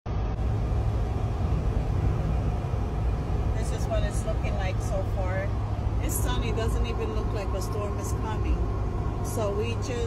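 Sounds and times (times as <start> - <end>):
car cabin road and engine rumble: 0.1 - 10.0.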